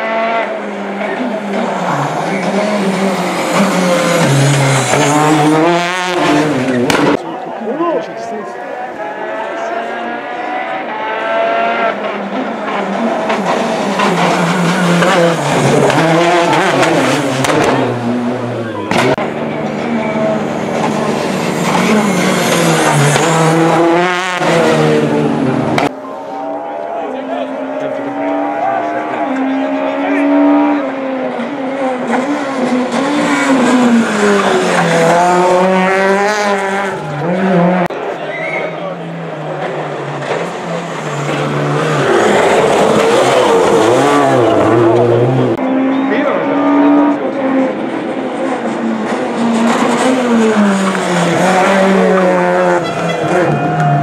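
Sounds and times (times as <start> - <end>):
rally car engine revving: 0.0 - 7.5, 9.0 - 54.0.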